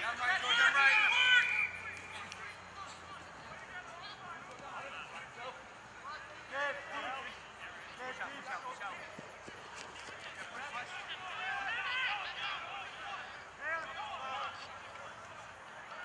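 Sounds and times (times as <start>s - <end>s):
players shouting across a field: 0.0s - 16.0s.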